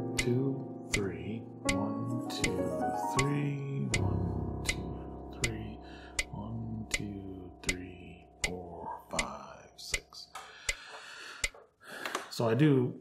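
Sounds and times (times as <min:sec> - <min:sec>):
digital piano chord: 0:00.0 - 0:09.9
metronome clicking: 0:00.0 - 0:11.6.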